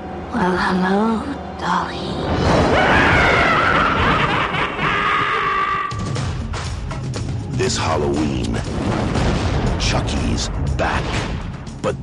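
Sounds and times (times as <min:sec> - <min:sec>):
gravelly sinister snicker: 0:03.2 - 0:05.6.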